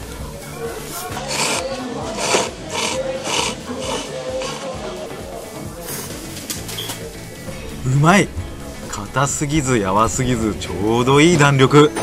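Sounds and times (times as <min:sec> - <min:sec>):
light background music: 0:00.0 - 0:12.0
noodle slurping: 0:01.1 - 0:04.9.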